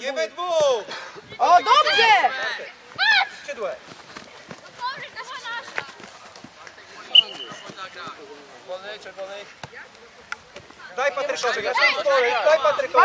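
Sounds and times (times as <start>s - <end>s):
players calling out: 6.7s - 8.3s.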